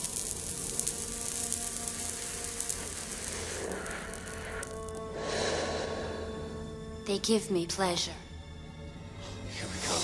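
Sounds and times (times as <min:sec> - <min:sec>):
cigarette crackling and sizzling: 0:00.0 - 0:06.3.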